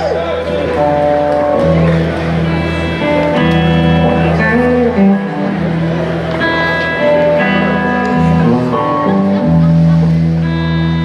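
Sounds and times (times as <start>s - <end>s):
blues-rock band playing: 0.0s - 11.0s
electric guitars sustained notes: 0.0s - 11.0s.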